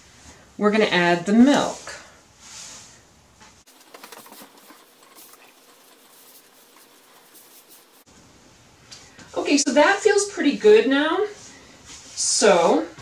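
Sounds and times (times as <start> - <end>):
hands patting and rubbing dough: 3.6 - 8.1.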